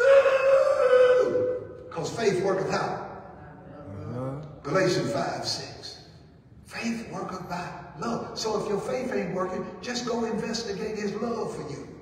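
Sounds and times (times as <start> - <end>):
man's high-pitched holler: 0.0 - 1.6.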